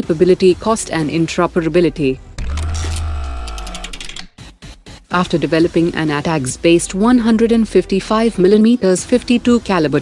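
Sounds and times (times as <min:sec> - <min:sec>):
held electronic chord: 0:02.4 - 0:04.3.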